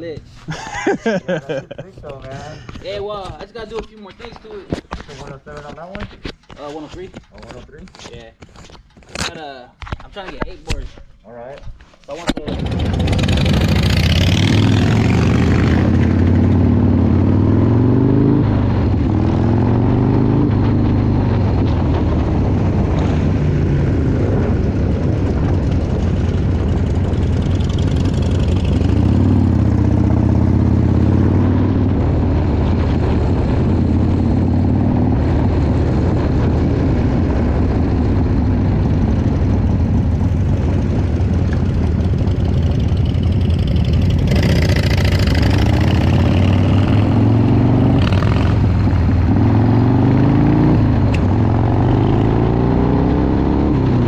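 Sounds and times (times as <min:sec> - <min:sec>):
motorcycle accelerating: 0:12.4 - 0:54.0
wind noise on microphone: 0:12.7 - 0:54.0.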